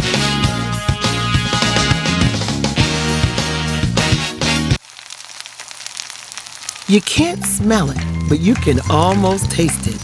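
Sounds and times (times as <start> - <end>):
sausages sizzling in a skillet: 4.7 - 10.0
person speaking: 6.8 - 10.0.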